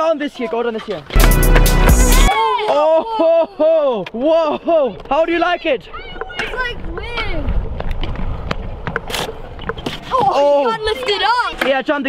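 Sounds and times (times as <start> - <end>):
scooter wheels rolling on concrete: 3.8 - 12.0.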